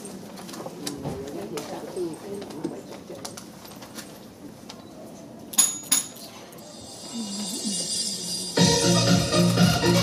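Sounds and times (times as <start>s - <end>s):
murmur of overlapping voices: 0.0s - 10.0s.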